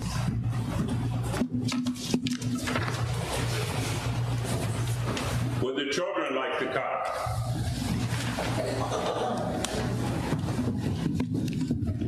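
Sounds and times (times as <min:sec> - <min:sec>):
people shuffling and footsteps: 0:00.0 - 0:05.6, 0:07.0 - 0:12.0
low electrical hum: 0:00.0 - 0:12.0.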